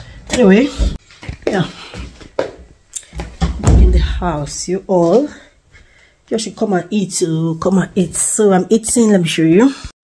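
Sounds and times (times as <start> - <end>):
woman's voice: 0.3 - 1.9, 3.6 - 5.6, 6.3 - 10.0
heavy low thump: 3.4 - 4.5.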